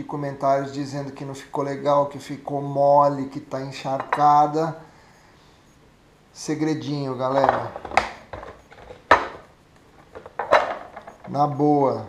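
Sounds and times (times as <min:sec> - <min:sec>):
plastic tub knocking and scraping: 0:07.4 - 0:09.4, 0:10.1 - 0:11.3.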